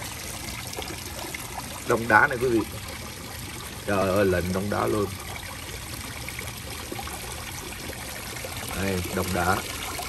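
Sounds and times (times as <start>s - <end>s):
water trickling over rocks: 0.0s - 10.0s.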